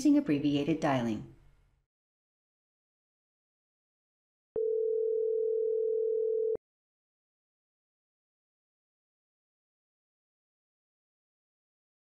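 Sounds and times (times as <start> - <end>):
phone ringback tone: 4.6 - 6.6.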